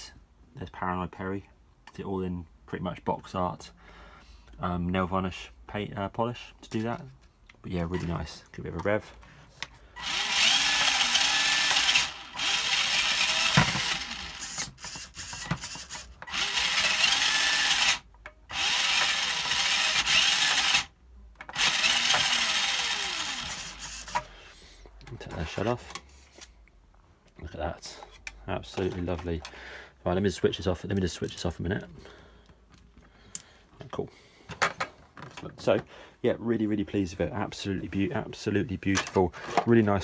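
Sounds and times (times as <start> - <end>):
electric motor whine revving: 10.0 - 14.6, 16.3 - 20.9, 21.6 - 24.2.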